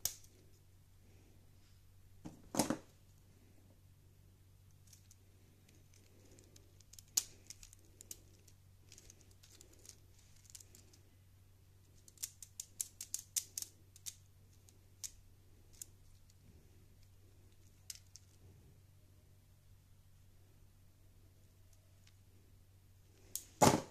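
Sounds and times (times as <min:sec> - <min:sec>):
faint low hum: 0:00.0 - 0:23.9
plastic parts clicking and clattering: 0:04.7 - 0:11.0, 0:12.0 - 0:16.3, 0:17.5 - 0:18.4.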